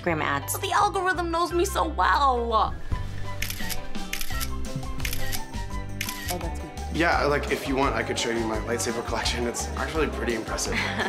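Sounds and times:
background music with steady beat: 0.0s - 11.0s
camera shutter clicks: 3.4s - 6.4s.

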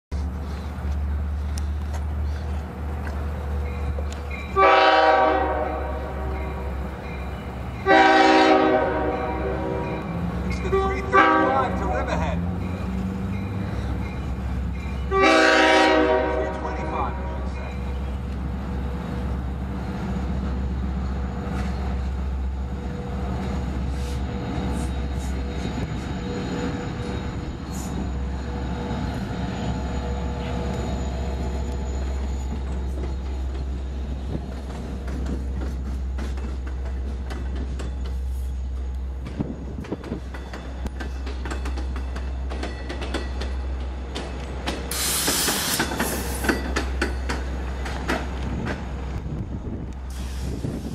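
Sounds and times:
train wheels clicking on rails: 0.1s - 4.6s, 17.5s - 50.9s
locomotive horn blasts: 4.5s - 6.6s, 7.8s - 10.0s, 10.7s - 11.8s, 15.1s - 17.5s.

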